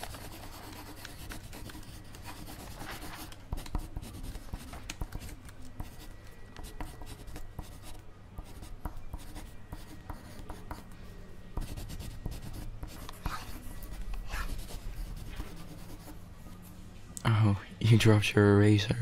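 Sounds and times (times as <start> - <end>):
pencil writing on paper: 0.0 - 10.9, 11.6 - 16.2.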